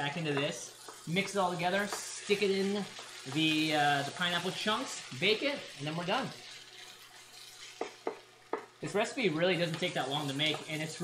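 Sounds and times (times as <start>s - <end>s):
spatula scraping a pan: 0.0s - 8.6s
rice sizzling in a skillet: 0.0s - 11.0s.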